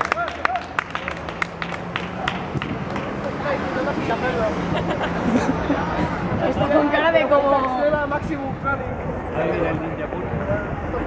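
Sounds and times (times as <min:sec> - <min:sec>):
people clapping along: 0:00.0 - 0:03.4.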